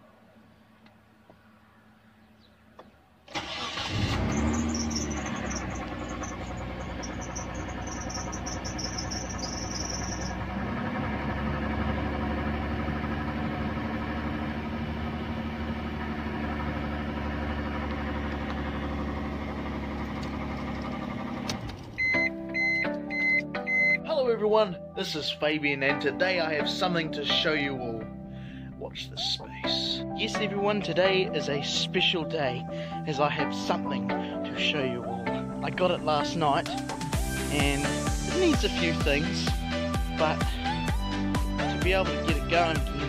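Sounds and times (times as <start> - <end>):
car engine starting and idling: 3.2 - 24.0, 34.8 - 43.0
high intermittent squeal: 3.9 - 10.6
electronic beeps: 4.2 - 10.4, 22.0 - 24.0.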